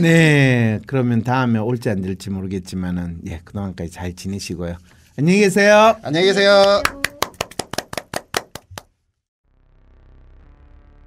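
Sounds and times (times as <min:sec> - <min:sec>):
hands clapping: 0:06.4 - 0:08.9.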